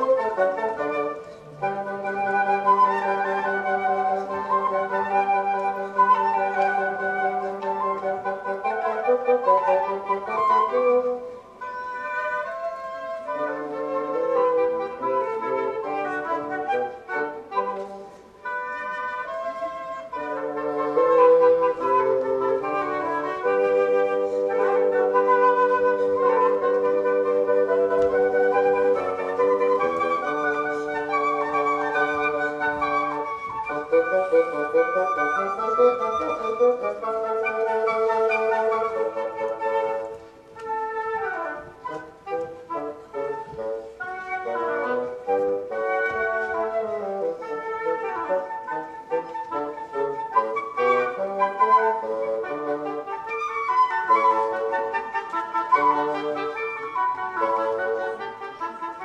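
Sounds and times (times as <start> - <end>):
woodwind trio playing classical piece: 0.0 - 59.0.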